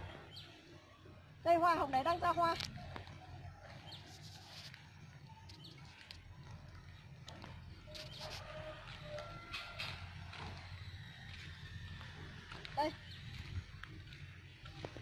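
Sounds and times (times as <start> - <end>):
footsteps on dry dirt: 2.7 - 15.0.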